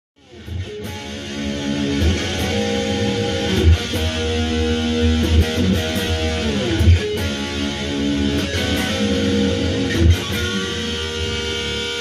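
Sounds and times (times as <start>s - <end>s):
electric guitar picked notes: 0.2s - 12.0s.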